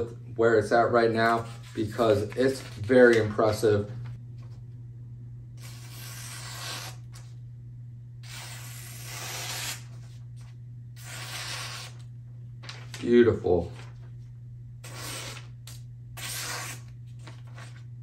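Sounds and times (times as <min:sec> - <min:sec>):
steady low hum: 0:00.0 - 0:18.0
knife slicing paper: 0:05.6 - 0:07.2, 0:08.2 - 0:10.2, 0:11.0 - 0:12.9, 0:14.8 - 0:17.8.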